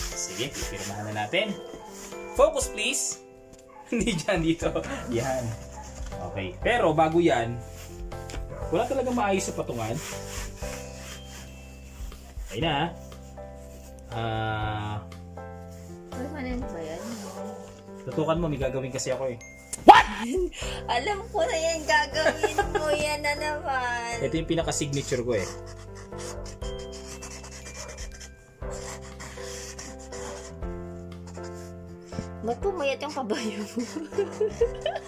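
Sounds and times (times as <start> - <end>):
hands rubbing on chessboard: 0.0 - 2.4, 4.9 - 6.2, 7.6 - 14.2, 15.6 - 17.8, 21.4 - 23.4, 24.9 - 35.0
marker pen scratching on board: 0.0 - 2.4, 4.8 - 6.2, 7.6 - 14.1, 15.6 - 18.0, 21.4 - 23.5, 24.9 - 35.0
background music: 0.0 - 35.0.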